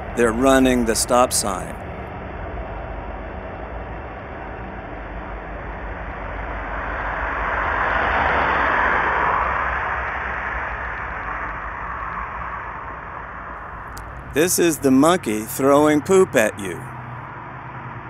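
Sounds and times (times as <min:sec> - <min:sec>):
car driving past: 0:06.5 - 0:11.5.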